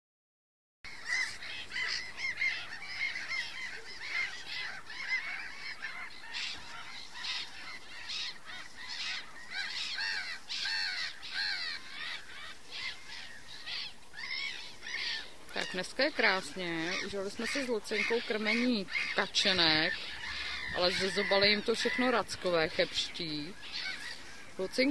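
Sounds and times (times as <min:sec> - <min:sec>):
gulls calling: 0:00.9 - 0:24.9.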